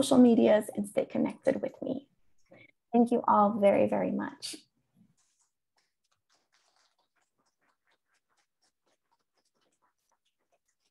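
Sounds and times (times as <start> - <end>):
faint ticks and scratches: 4.9 - 10.9.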